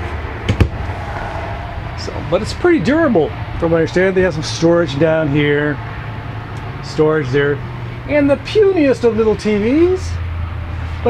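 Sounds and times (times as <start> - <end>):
low background rumble: 0.0 - 10.8.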